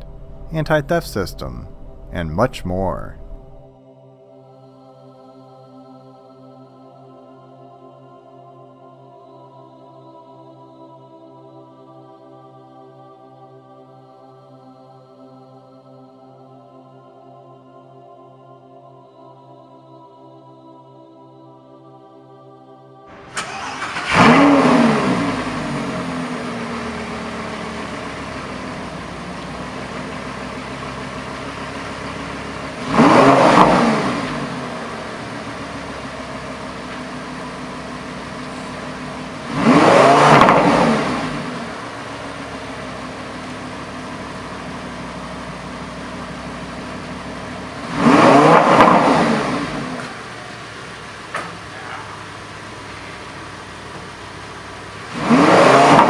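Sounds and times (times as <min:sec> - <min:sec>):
sports car engine revving and idling: 0:00.0 - 0:03.7, 0:23.2 - 0:56.0.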